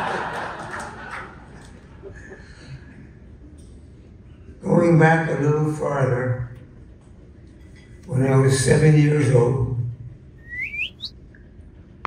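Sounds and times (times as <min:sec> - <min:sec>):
rising bird chirps: 0:10.4 - 0:11.1.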